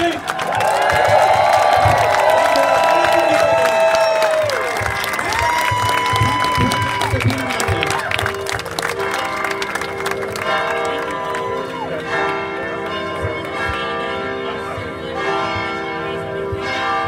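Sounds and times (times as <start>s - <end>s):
church bells pealing: 2.1s - 17.0s.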